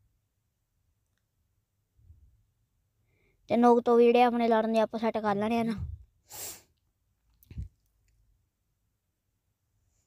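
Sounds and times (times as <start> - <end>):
short sharp breath: 6.2 - 6.8.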